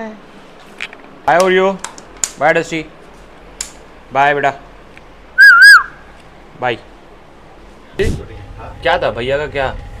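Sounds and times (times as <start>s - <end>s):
loud whistle sliding down: 5.4s - 6.0s.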